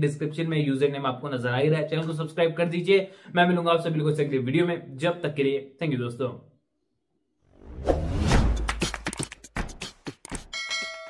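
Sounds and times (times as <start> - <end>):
whoosh sound effect: 7.6 - 9.2.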